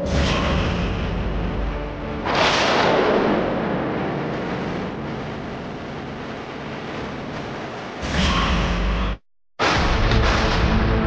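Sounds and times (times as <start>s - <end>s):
booming whoosh hits: 0.0s - 11.0s.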